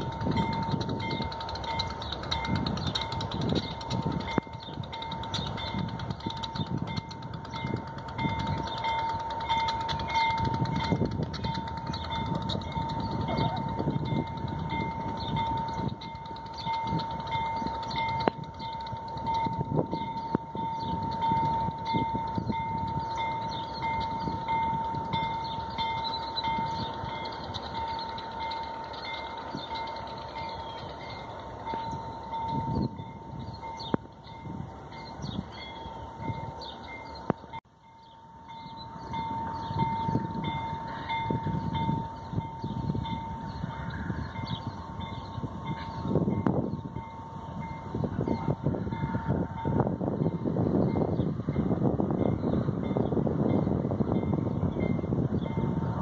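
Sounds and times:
diesel train rumbling: 0:00.0 - 0:56.0.

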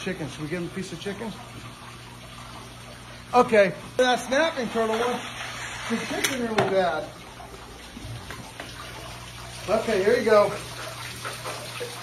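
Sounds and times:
water running from small waterfall: 0:02.4 - 0:12.0.

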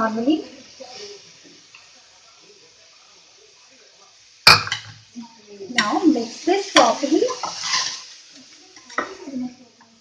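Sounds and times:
spoon knocking on pan: 0:04.5 - 0:05.0
spoon scraping pan: 0:05.7 - 0:09.2.

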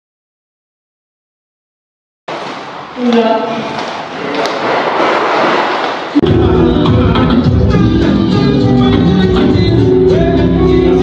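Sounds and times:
party music with heavy bass: 0:06.2 - 0:11.0.

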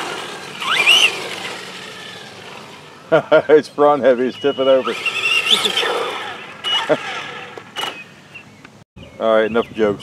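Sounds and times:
man laughing high whinny laugh: 0:03.1 - 0:03.6, 0:06.6 - 0:07.4.

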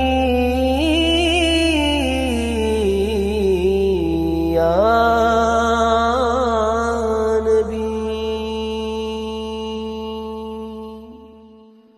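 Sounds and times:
man singing: 0:00.0 - 0:11.9.

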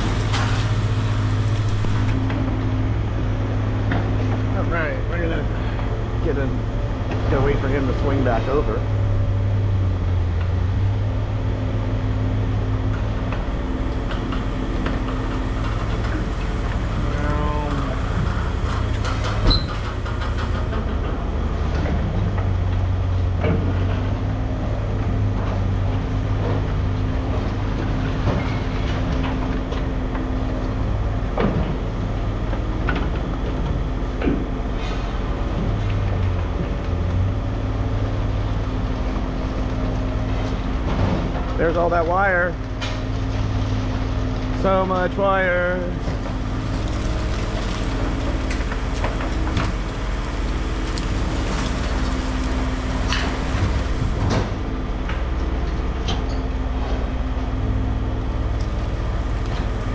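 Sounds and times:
scrap metal clanks and rattles: 0:00.0 - 0:03.0, 0:12.8 - 0:30.2
heavy diesel machinery running: 0:00.0 - 0:59.9.

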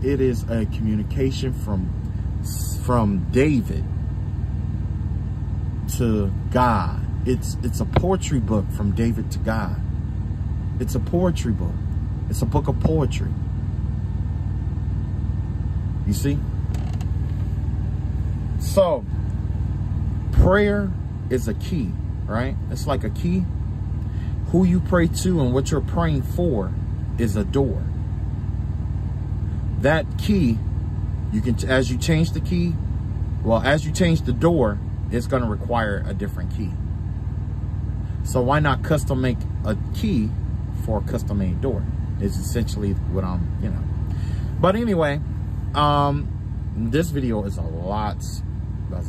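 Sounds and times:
man speaking: 0:00.0 - 0:03.9, 0:05.8 - 0:09.8, 0:10.8 - 0:13.4, 0:16.0 - 0:16.5, 0:18.6 - 0:19.1, 0:20.4 - 0:23.5, 0:24.4 - 0:27.9, 0:29.8 - 0:30.6, 0:31.4 - 0:32.8, 0:33.4 - 0:36.8, 0:38.2 - 0:44.0, 0:44.6 - 0:49.0
low machine hum: 0:00.0 - 0:49.0
low pulsing rumble: 0:00.0 - 0:49.0.

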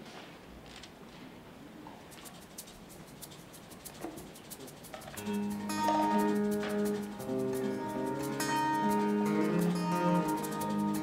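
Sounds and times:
acoustic guitar: 0:02.1 - 0:11.0
upright bass: 0:05.2 - 0:11.0.

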